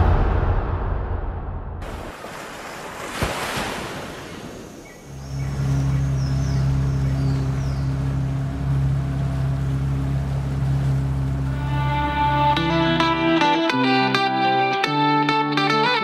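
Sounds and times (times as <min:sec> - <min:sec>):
sea surf washing in: 0:01.8 - 0:13.1.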